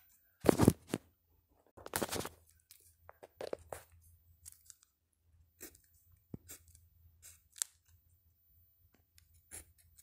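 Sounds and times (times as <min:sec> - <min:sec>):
pen scratching on paper: 0:09.3 - 0:10.0.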